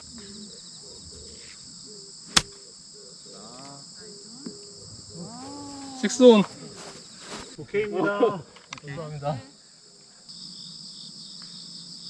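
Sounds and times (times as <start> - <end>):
crickets chirping: 0.0 - 12.0
golf club striking ball: 2.3 - 2.6.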